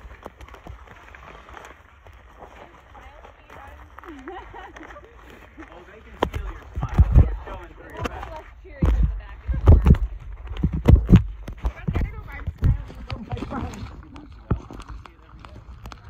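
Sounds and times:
handling rumble on microphone: 0:05.6 - 0:16.0.

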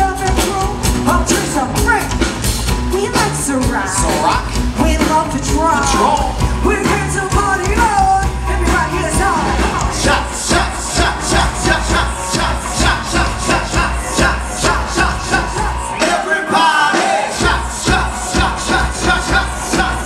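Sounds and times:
vocalist singing: 0:00.0 - 0:02.2, 0:02.9 - 0:20.0
live rock band: 0:00.0 - 0:20.0
steady drum beat: 0:00.0 - 0:20.0.

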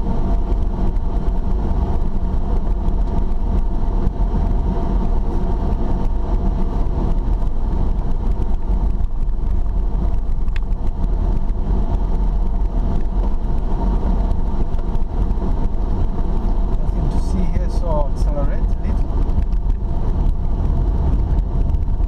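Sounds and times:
car driving on dirt road: 0:00.0 - 0:22.0.

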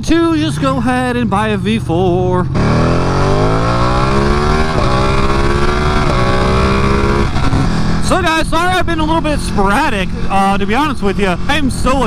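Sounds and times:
wind and road noise: 0:00.0 - 0:12.0
motorcycle engine revving: 0:00.6 - 0:12.0.

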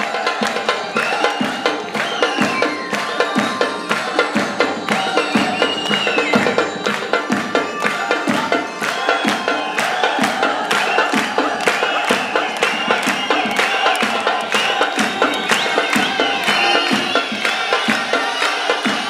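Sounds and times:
audience cheering: 0:00.0 - 0:19.0
audience clapping: 0:00.0 - 0:19.0
drums fast steady beat: 0:00.0 - 0:19.0.

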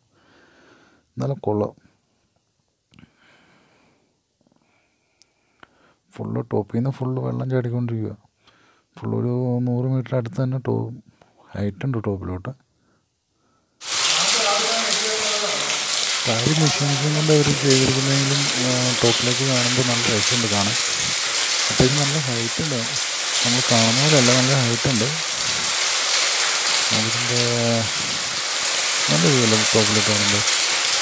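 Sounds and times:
man's voice: 0:13.8 - 0:25.7, 0:26.9 - 0:28.4, 0:29.0 - 0:30.5
falling water hissing: 0:13.8 - 0:31.0.

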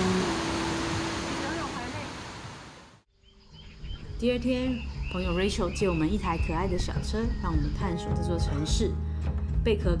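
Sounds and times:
stream rushing over boulders: 0:00.0 - 0:03.0.

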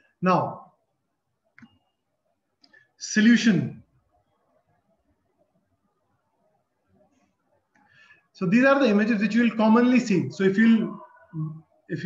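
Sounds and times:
man speaking: 0:00.2 - 0:00.8, 0:03.0 - 0:03.9, 0:08.4 - 0:11.1.

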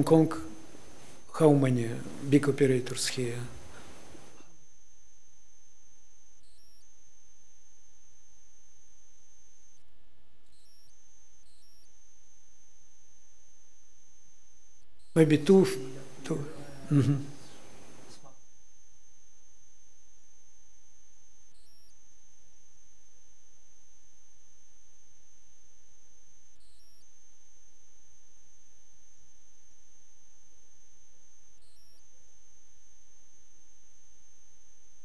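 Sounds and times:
steady electrical hum: 0:00.0 - 0:35.0
thin high-pitched whine: 0:00.0 - 0:35.0.

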